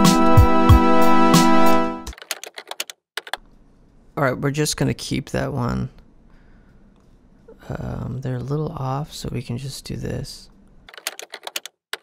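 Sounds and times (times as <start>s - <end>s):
music playback: 0.0s - 2.1s
computer keyboard keystrokes: 2.1s - 3.4s, 10.9s - 12.0s.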